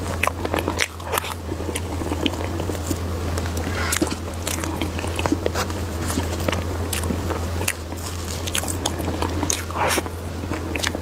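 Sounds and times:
chewing with wet mouth smacks: 0:00.0 - 0:11.0
steady low hum: 0:00.0 - 0:11.0.

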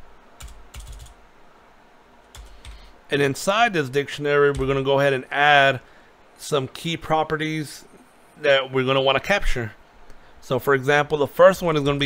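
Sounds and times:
computer keyboard typing: 0:00.4 - 0:01.2, 0:02.3 - 0:02.9, 0:04.5 - 0:04.8.

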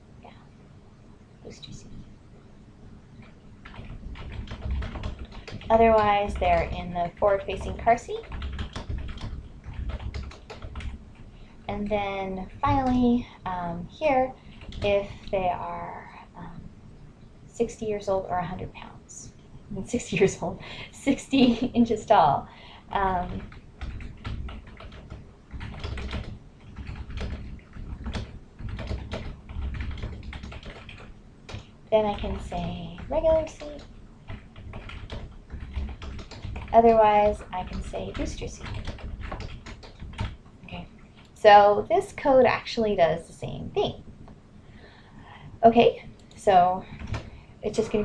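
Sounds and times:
typing on computer keyboard: 0:03.2 - 0:11.0, 0:14.5 - 0:15.0, 0:23.0 - 0:40.4, 0:46.2 - 0:48.0.

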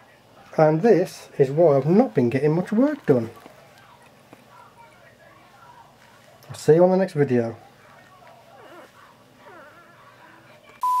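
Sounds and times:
puppies squeaking: 0:08.5 - 0:10.6.

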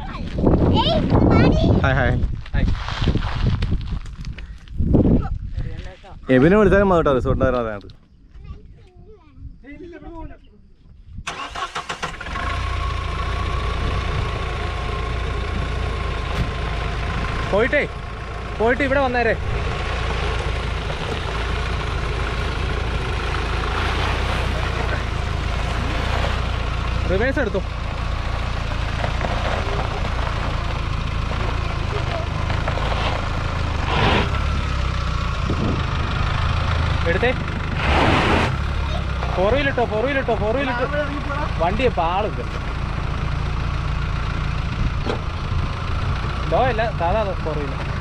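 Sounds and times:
diesel engine idling: 0:11.3 - 0:48.0.

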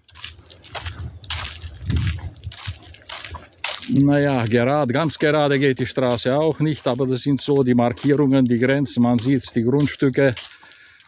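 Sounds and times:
footsteps on wet dirt: 0:00.0 - 0:11.0.

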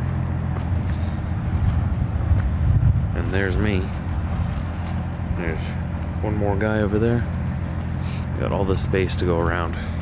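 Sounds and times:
faint footsteps: 0:00.0 - 0:06.2
diesel truck engines idling: 0:00.0 - 0:10.0.

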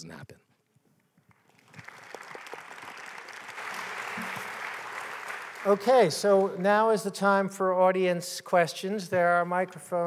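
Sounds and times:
audience applauding: 0:01.3 - 0:07.0.

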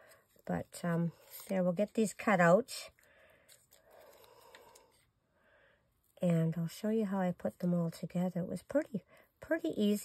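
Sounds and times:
paper and scissors rustling: 0:00.0 - 0:02.4.

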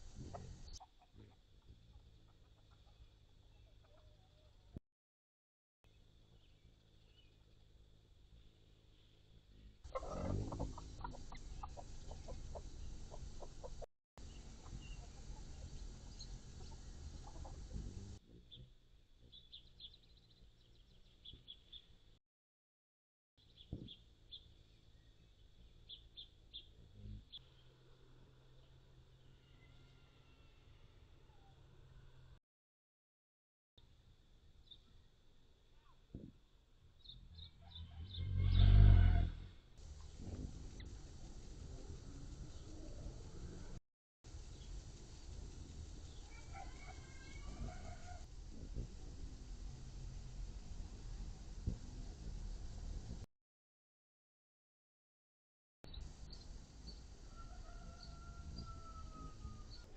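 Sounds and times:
hummingbird wing hum: 0:00.0 - 0:03.1, 0:06.2 - 0:21.9, 0:39.8 - 0:53.2
steady low rumble: 0:07.0 - 0:18.2, 0:39.8 - 0:46.3, 0:48.2 - 0:53.3
low-pitched bird calls: 0:09.5 - 0:18.7, 0:37.1 - 0:41.0.

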